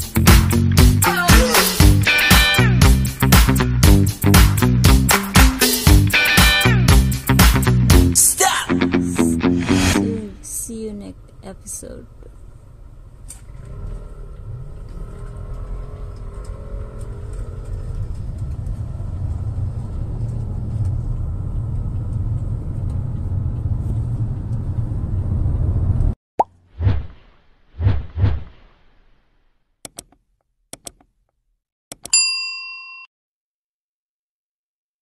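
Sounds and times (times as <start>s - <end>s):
vehicle road rumble: 11.2s - 26.2s
whooshing pop sound effects: 26.4s - 29.0s.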